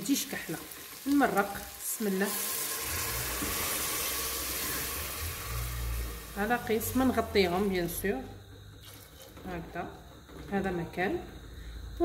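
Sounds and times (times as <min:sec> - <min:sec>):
sauce sizzling in pot: 0:00.0 - 0:08.0.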